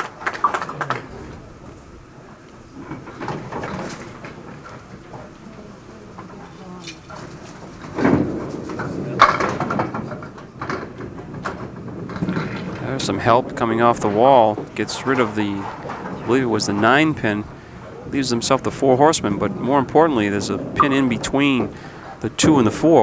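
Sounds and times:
bowling ball rolling on wooden lane: 0.0s - 23.0s
clatter of bowling pins: 0.0s - 23.0s
low chatter of spectators: 0.0s - 23.0s.

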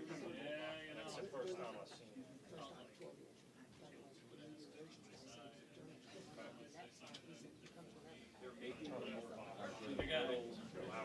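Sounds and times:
quiet indistinct talk: 0.0s - 11.0s.

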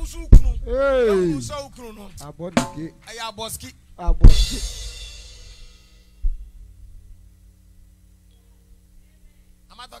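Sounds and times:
bass drum thump: 0.0s - 0.8s, 2.5s - 3.0s, 4.0s - 4.8s, 6.2s - 6.7s
steady low hum: 0.0s - 10.0s
cymbal wash: 4.3s - 6.2s.

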